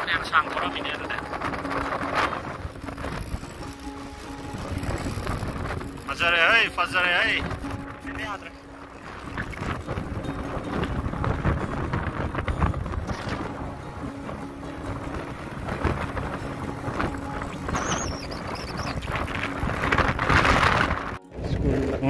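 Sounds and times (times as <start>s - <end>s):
road noise: 0.0s - 22.0s
scooter engine humming: 0.0s - 22.0s
wind buffeting microphone: 0.0s - 22.0s.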